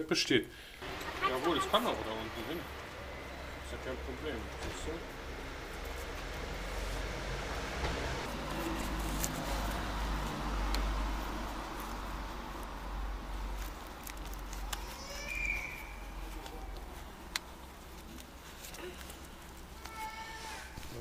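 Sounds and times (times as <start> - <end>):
low street rumble: 0.6 - 21.0
hook-and-loop straps rustling: 2.8 - 21.0.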